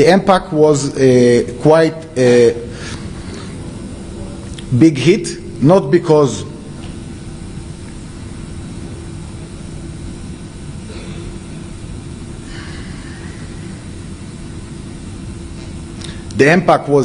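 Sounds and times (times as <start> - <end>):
faint constant hum: 0.0 - 17.0
low room rumble: 0.0 - 17.0.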